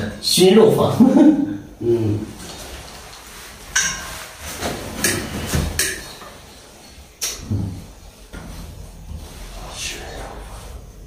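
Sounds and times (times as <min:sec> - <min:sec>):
short rustling: 0:02.2 - 0:07.1.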